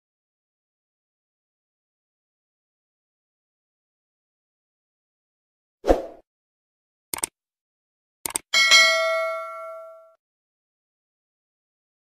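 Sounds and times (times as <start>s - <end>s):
bright bell ding: 8.6s - 10.2s.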